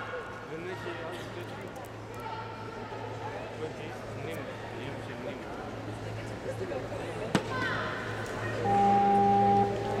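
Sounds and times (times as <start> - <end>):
voices in sports hall: 0.0 - 10.0
steady hum: 5.6 - 10.0
electronic buzzer tone: 8.6 - 10.0.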